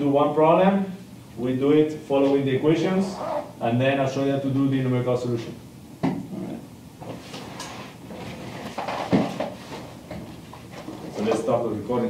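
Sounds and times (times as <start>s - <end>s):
bags and desks knocking: 8.8s - 10.3s.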